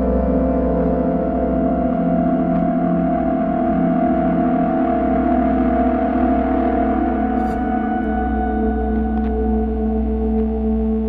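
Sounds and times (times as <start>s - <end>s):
sustained drone tones: 0.0s - 11.0s.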